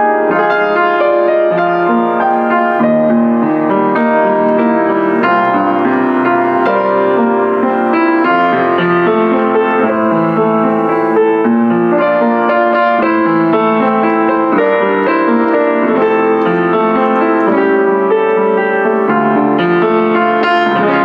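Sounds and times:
upright piano playing: 0:00.0 - 0:21.0.

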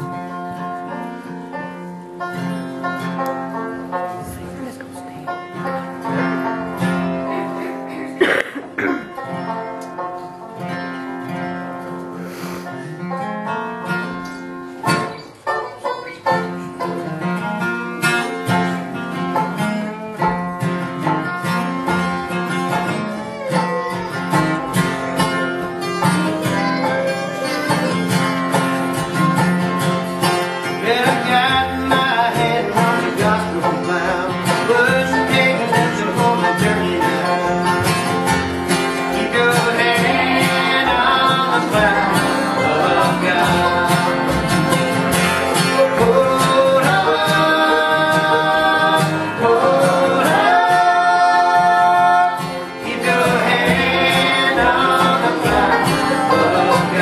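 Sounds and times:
banjo picking: 0:00.0 - 0:57.0
strummed acoustic guitar: 0:00.0 - 0:57.0.

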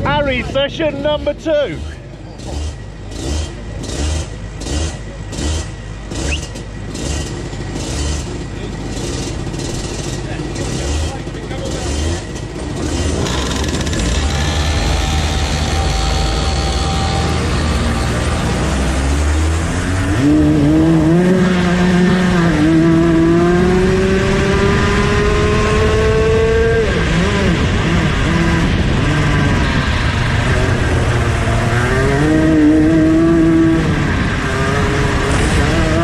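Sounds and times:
kart engine revving: 0:00.0 - 0:36.0.

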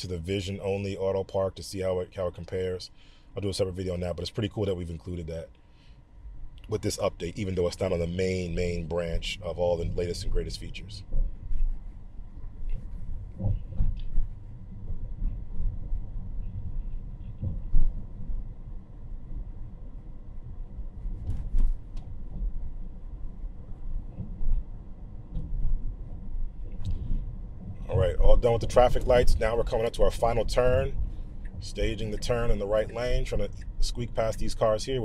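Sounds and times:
road and tyre rumble: 0:06.4 - 0:35.0.

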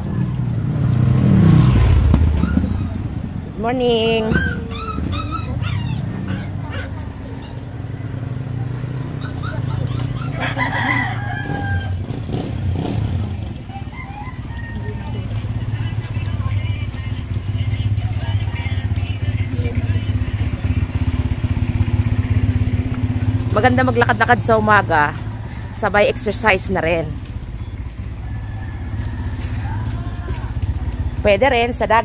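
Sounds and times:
rooster crowing: 0:10.1 - 0:12.9, 0:13.5 - 0:15.6, 0:25.1 - 0:26.6, 0:27.9 - 0:30.7.

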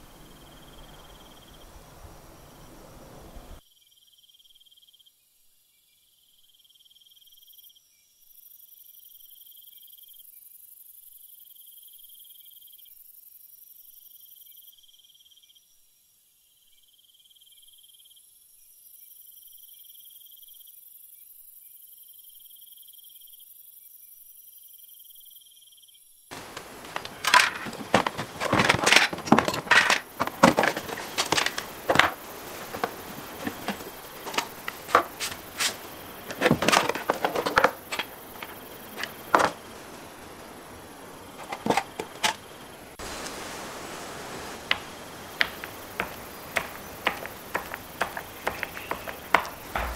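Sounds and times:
crickets chirping: 0:00.0 - 0:49.9
broad noise: 0:26.3 - 0:49.9.

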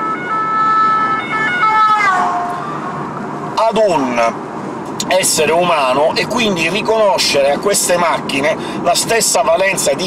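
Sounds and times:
ambulance siren passing: 0:00.0 - 0:03.2.

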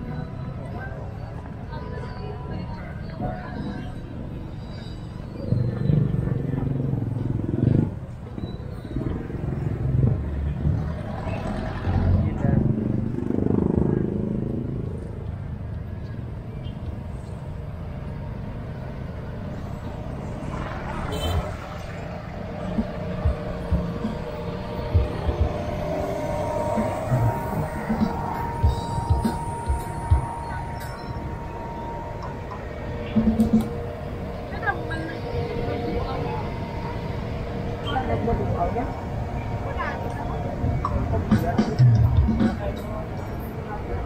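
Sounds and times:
people talking: 0:00.0 - 0:04.4, 0:10.4 - 0:14.7, 0:32.2 - 0:44.0
road traffic rumble: 0:00.0 - 0:44.0.

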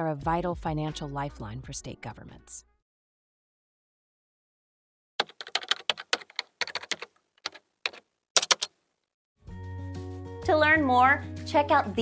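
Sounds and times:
keyboard typing clicks: 0:05.2 - 0:08.7.

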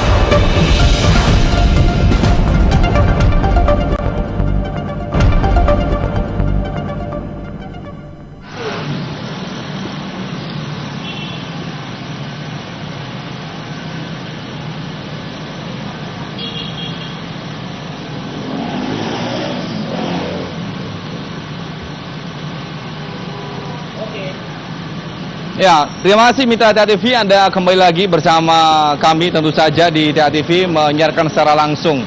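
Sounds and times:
motorcycle and car engines passing: 0:08.2 - 0:25.5.

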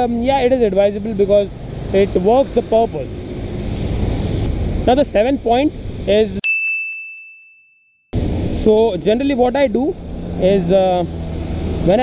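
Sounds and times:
road noise: 0:00.0 - 0:06.4, 0:08.2 - 0:12.0
high-pitched bell chime: 0:06.4 - 0:08.0.

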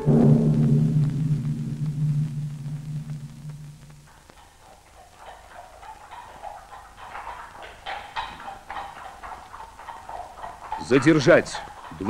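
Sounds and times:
faint film soundtrack hiss: 0:00.0 - 0:12.0
horse hooves on pavement: 0:04.1 - 0:12.0.

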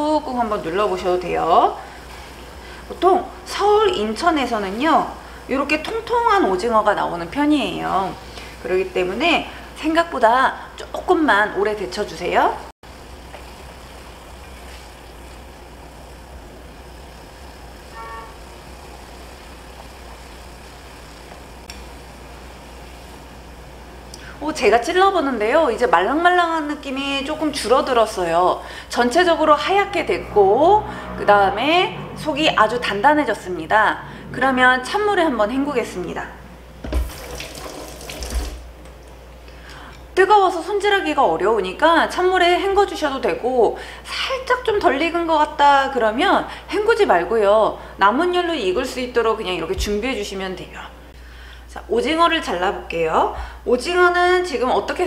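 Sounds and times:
water boiling in saucepan: 0:00.0 - 0:30.0, 0:36.6 - 0:38.8
faint tone: 0:17.9 - 0:18.4
water running from a tap: 0:36.9 - 0:38.6.

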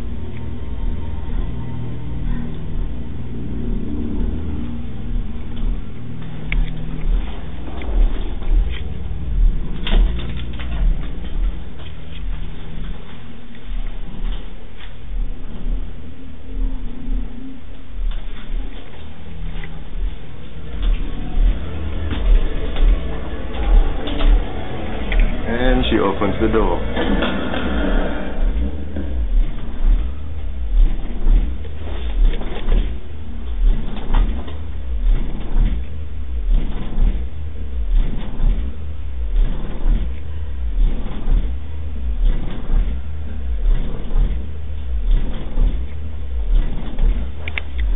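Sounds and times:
heavy low bass pulses: 0:00.0 - 0:47.9
steady low rumble: 0:00.0 - 0:47.9.

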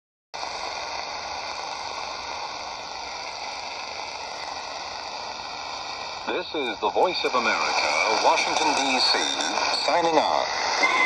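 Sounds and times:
radio static hissing: 0:00.4 - 0:11.0.

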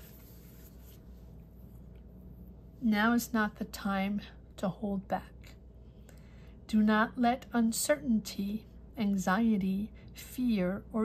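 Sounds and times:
faint soft rustling: 0:00.0 - 0:02.1
steady low hum: 0:00.0 - 0:11.0.

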